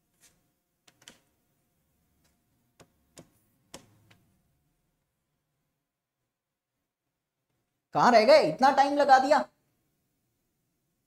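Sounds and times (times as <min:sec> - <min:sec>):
pen tapping on display board: 0:02.2 - 0:04.2.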